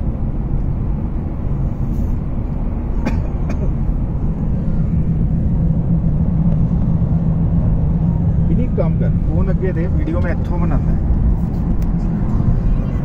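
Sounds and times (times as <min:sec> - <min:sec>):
car engine and tyres rumbling: 0:00.0 - 0:13.0.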